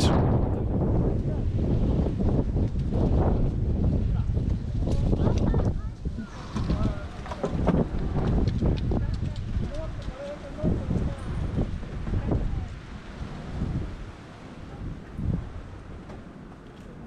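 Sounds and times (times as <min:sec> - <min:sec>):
wind buffeting microphone: 0:00.0 - 0:17.0
faint voices talking: 0:04.1 - 0:12.9.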